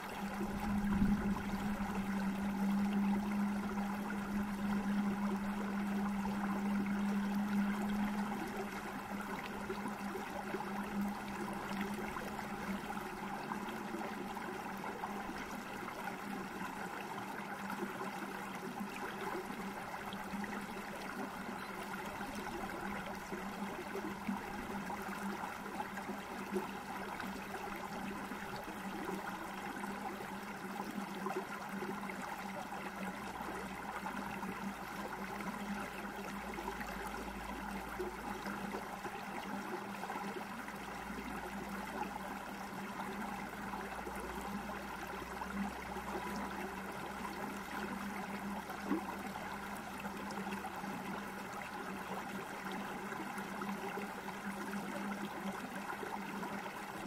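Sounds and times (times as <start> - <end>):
low hum: 0.0 - 15.6
stream gurgling: 0.0 - 57.0.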